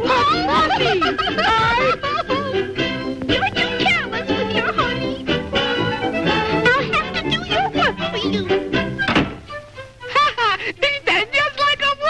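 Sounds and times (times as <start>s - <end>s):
door slamming shut: 9.0s - 9.5s.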